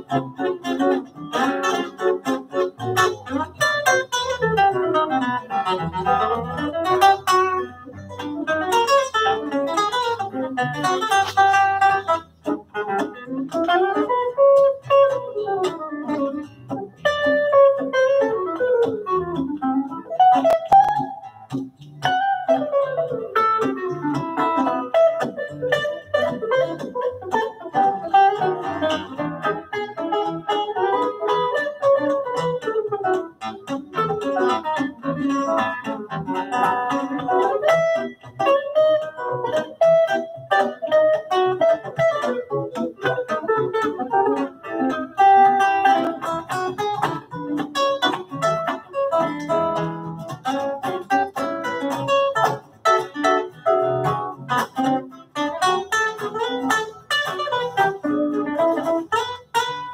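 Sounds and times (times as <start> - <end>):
acoustic guitar: 0.0 - 59.9
electric jazz guitar: 0.0 - 59.9.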